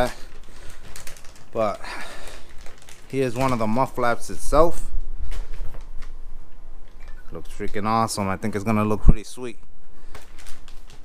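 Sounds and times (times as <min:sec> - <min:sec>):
low rumble of camera jostling: 0:02.4 - 0:11.0.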